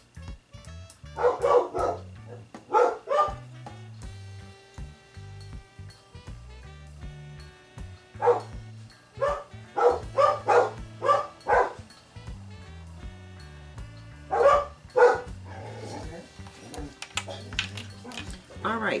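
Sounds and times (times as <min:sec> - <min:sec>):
background music with steady beat: 0:00.0 - 0:19.0
dog barking: 0:01.2 - 0:03.4, 0:08.2 - 0:08.6, 0:09.2 - 0:11.8, 0:14.3 - 0:16.2.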